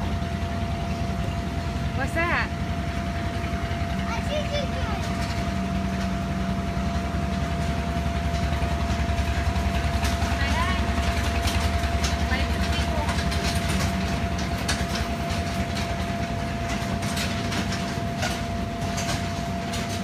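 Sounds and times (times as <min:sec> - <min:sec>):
inflation blower droning: 0:00.0 - 0:20.0.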